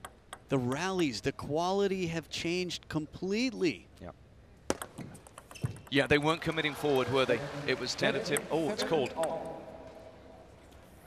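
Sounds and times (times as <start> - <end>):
table tennis ball clicks: 4.7 - 6.0.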